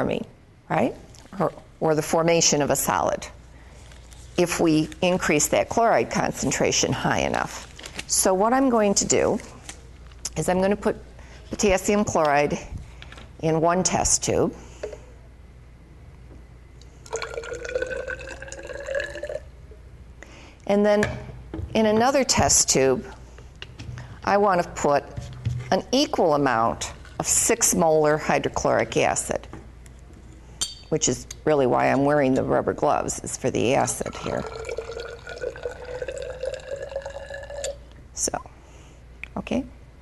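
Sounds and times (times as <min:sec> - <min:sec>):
liquid pouring into glass test tube: 0:16.9 - 0:19.5, 0:34.0 - 0:37.9.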